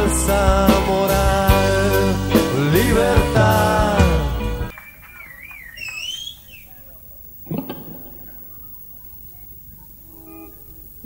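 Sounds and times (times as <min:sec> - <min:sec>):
person whistling: 0:04.7 - 0:06.7.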